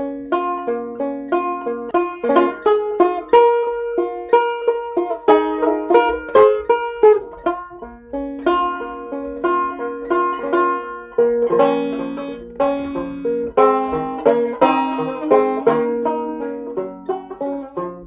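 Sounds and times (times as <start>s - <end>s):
banjo picking slow folk melody: 0.0s - 18.0s.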